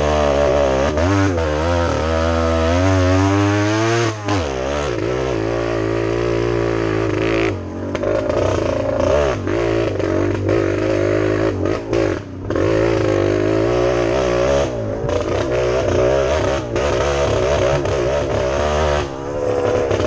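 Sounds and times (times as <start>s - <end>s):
motorcycle engine revving: 0.0s - 20.0s.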